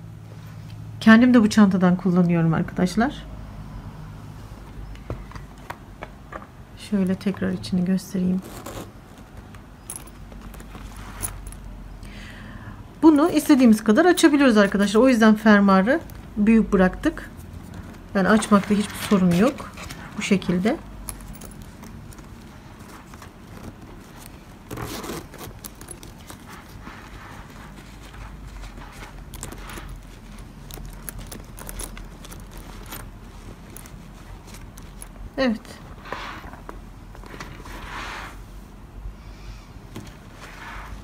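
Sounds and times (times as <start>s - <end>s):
handbag rustling: 8.3s - 11.9s, 13.1s - 37.9s
zipper and chain clicks: 8.4s - 11.7s, 17.6s - 35.4s.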